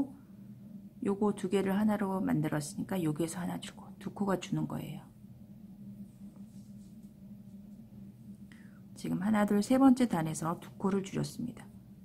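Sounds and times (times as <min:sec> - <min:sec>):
steady low hum: 0:00.0 - 0:12.0
faint breath: 0:08.4 - 0:09.0.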